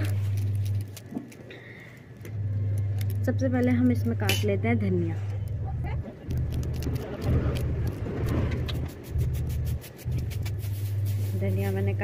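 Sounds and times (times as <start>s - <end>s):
low rumble: 2.3s - 12.0s
knife cutting herbs: 6.3s - 11.4s.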